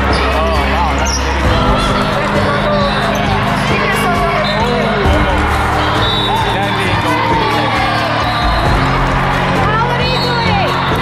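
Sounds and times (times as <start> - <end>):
chatter of players and spectators: 0.0 - 11.0
steady low hum or music: 0.1 - 9.7.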